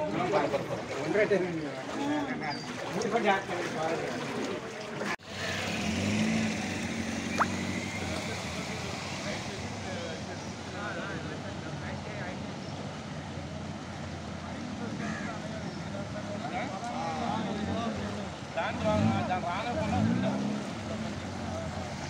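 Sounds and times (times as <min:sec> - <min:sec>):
voices of group of people: 0:00.0 - 0:05.8, 0:06.4 - 0:22.0.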